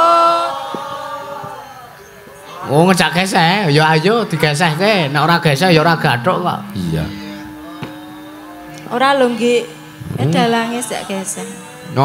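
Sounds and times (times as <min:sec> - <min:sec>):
woman singing a held note: 0:07.1 - 0:12.0.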